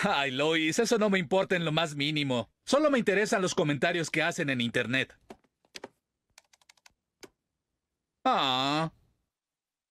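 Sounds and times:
laptop keyboard typing: 5.3s - 7.4s.

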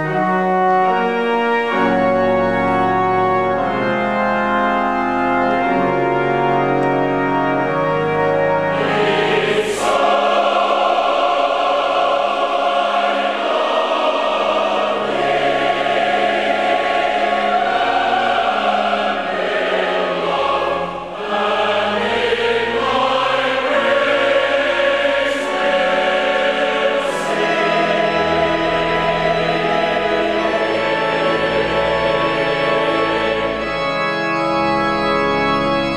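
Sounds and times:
organ: 0.0s - 35.9s
choir singing: 7.5s - 35.0s.

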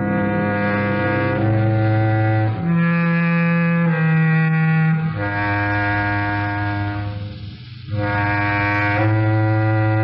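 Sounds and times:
low bowed strings note: 0.0s - 10.0s.

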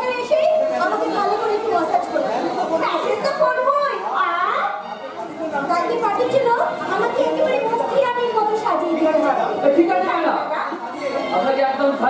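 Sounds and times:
actors' voices in dialogue: 0.0s - 12.0s.

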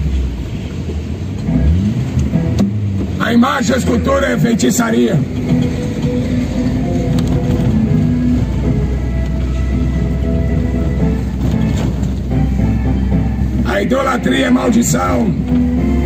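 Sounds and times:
vehicle engine running: 0.0s - 16.0s
music with long held notes: 1.4s - 3.2s, 4.2s - 16.0s.

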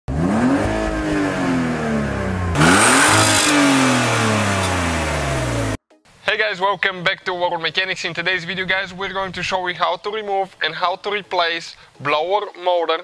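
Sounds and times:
car engine revving: 0.1s - 5.8s.

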